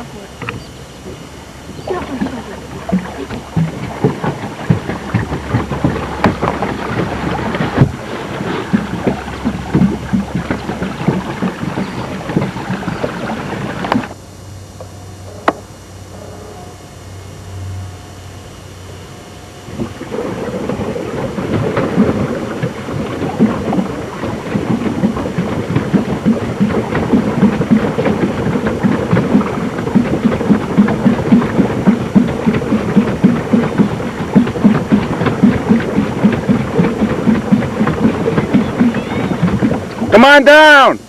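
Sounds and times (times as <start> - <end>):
paddle wheel churning water: 0.0 - 14.8, 18.6 - 41.0.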